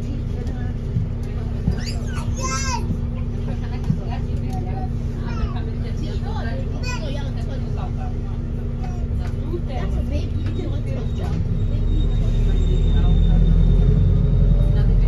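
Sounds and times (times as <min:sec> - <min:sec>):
bus interior rumble and hum: 0:00.0 - 0:15.0
passengers chattering: 0:00.0 - 0:15.0.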